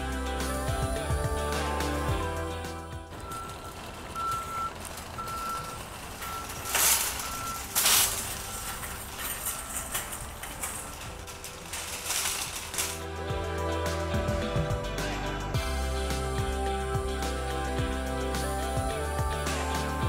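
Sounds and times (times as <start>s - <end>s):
shopping cart rolling over concrete: 0.2s - 17.6s
high electronic beep: 3.1s - 10.0s.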